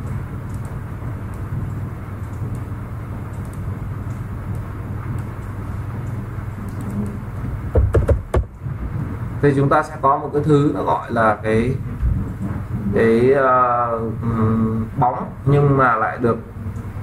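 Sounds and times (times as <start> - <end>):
low hum: 0.0 - 17.0.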